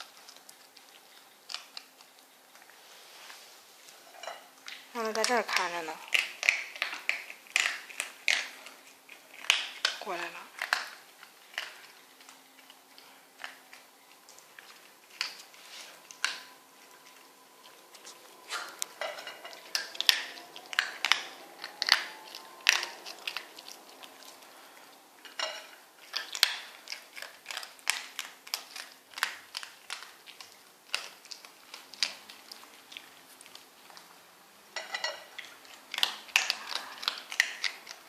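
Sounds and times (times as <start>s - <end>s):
dog crunching dry kibble: 0.0s - 2.8s, 3.9s - 34.2s, 34.8s - 38.0s.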